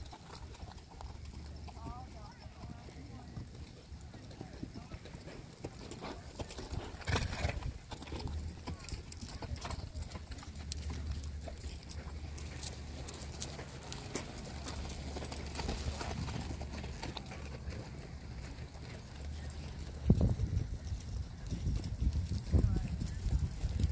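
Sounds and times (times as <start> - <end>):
horse hoofbeats on dirt: 0.0 - 23.9
faint voices: 0.6 - 23.9.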